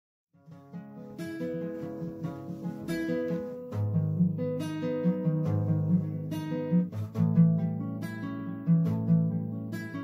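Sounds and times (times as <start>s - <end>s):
acoustic guitar music: 0.3s - 10.0s.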